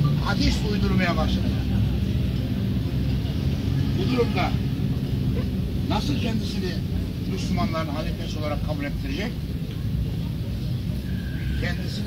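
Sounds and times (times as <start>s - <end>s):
faint crowd voices: 0.0s - 12.0s
low outdoor rumble: 0.0s - 12.0s.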